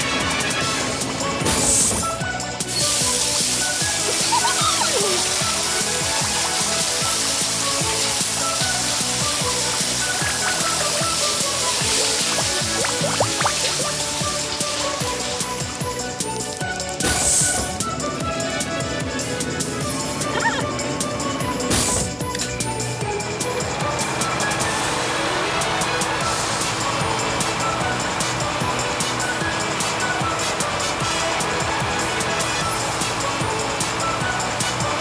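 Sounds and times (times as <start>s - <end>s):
background music: 0.0s - 35.0s
hissing water spray: 1.6s - 17.9s.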